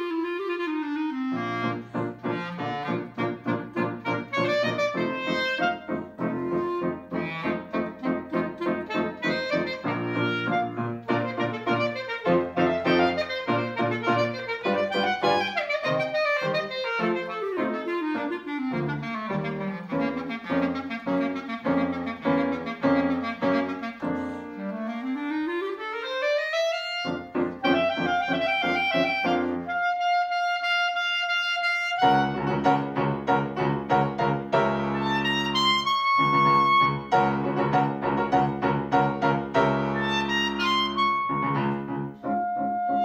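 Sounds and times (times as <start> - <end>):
clarinet melody: 0.0 - 43.0
piano accompaniment: 0.0 - 43.0.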